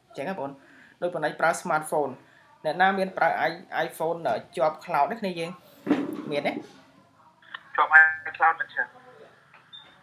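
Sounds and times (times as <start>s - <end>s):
person speaking: 7.4s - 8.9s.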